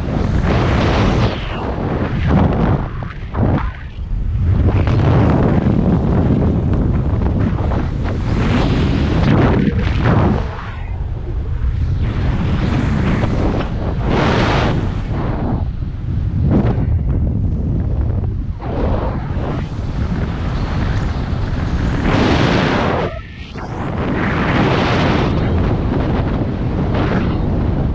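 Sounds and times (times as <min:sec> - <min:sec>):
wind buffeting microphone: 0:00.0 - 0:27.9.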